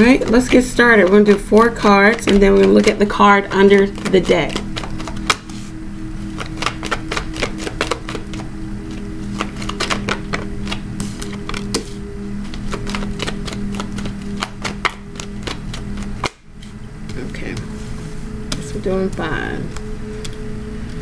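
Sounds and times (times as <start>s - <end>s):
cards clicking on wooden table: 0.0s - 5.6s, 6.4s - 8.4s, 9.3s - 16.4s
soft background music: 0.0s - 21.0s.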